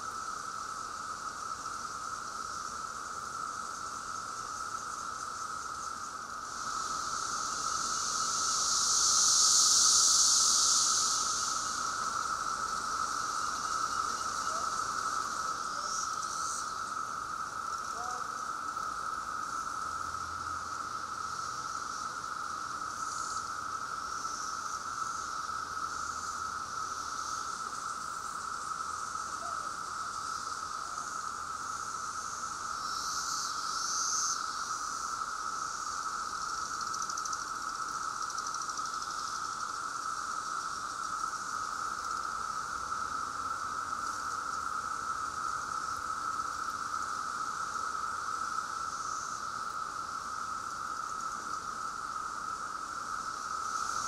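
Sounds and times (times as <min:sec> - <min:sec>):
cicadas droning: 0:00.0 - 0:54.0.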